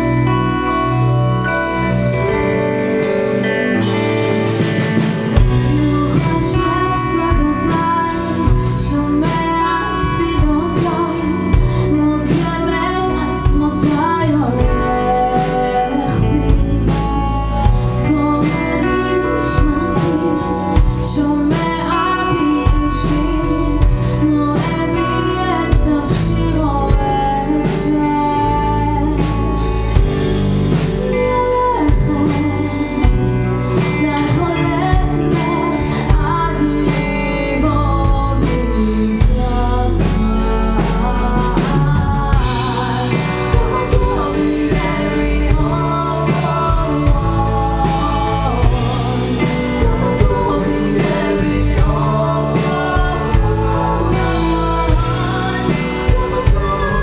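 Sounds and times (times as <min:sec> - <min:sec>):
plucked guitar: 0:00.0 - 0:57.0
woman singing into microphone: 0:00.0 - 0:57.0
drum kit: 0:01.8 - 0:57.0.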